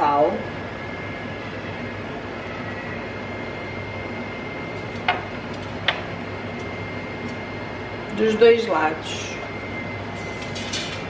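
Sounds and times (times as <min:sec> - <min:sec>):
air fryer fan hum: 0:00.0 - 0:11.0.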